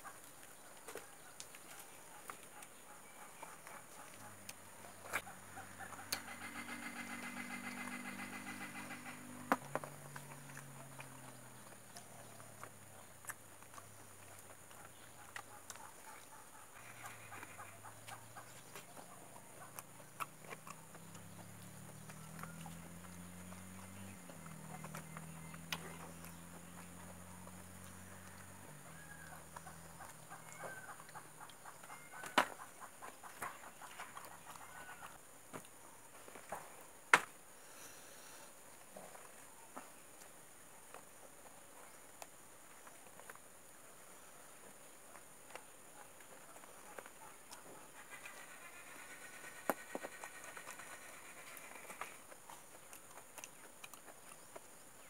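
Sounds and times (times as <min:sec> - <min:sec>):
faint short bird calls: 0:02.1 - 0:09.6.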